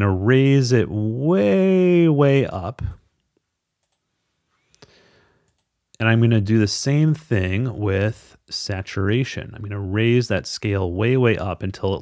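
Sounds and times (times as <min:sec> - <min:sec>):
computer mouse clicks: 0:03.8 - 0:04.0.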